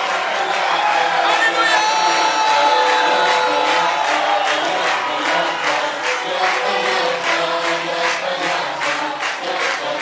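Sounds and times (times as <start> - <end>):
voices singing: 1.1 - 10.0.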